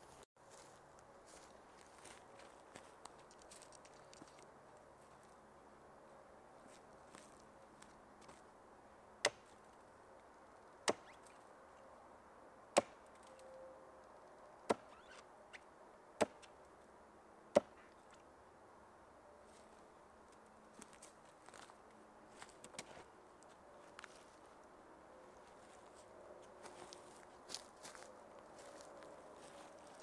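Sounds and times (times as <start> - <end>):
hatchet chopping wood: 9.2 - 9.5, 10.8 - 11.2, 12.8 - 13.0, 16.2 - 16.5, 17.5 - 17.8.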